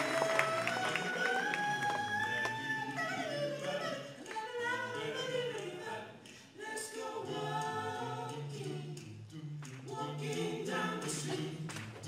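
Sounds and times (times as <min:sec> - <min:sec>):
male quartet singing a cappella: 0:00.0 - 0:12.0.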